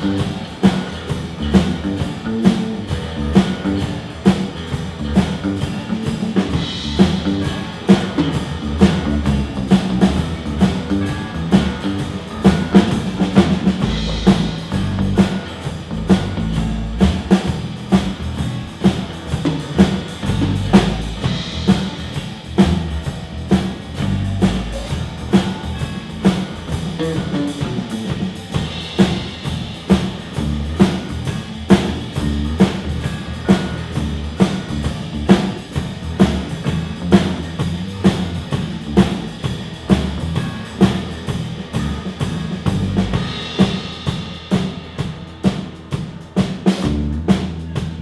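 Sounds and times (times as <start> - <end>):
drum kit beat: 0.0 - 48.0
live band playing: 0.0 - 48.0.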